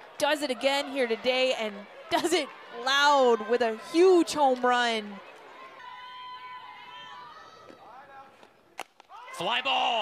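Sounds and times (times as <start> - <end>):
faint crowd voices and calls: 0.0 - 10.0.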